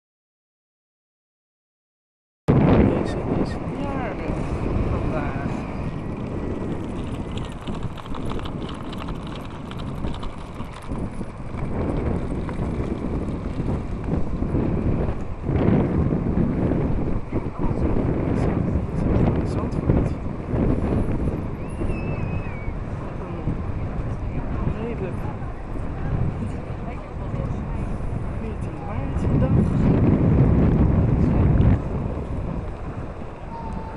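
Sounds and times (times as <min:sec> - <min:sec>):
wind buffeting microphone: 0:02.5 - 0:33.9.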